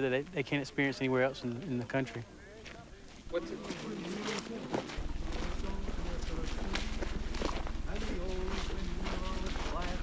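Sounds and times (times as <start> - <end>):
footsteps on gravel: 2.6 - 10.0
indistinct voices: 2.6 - 10.0
steady low hum: 4.9 - 10.0.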